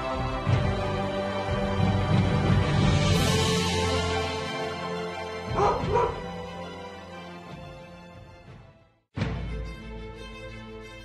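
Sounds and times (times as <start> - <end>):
background music: 0.0 - 11.0
high dog yelps: 5.5 - 6.3.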